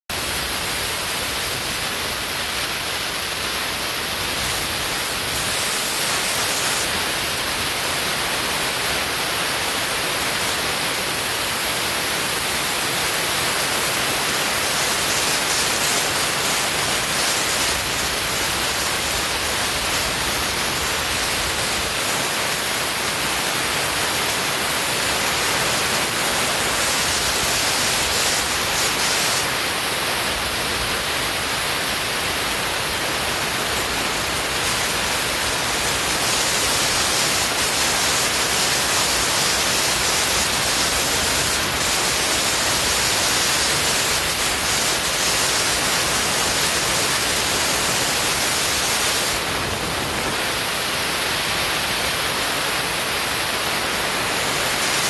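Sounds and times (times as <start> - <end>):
compressed air hissing: 4.4 - 7.5, 13.1 - 30.0, 34.2 - 50.9.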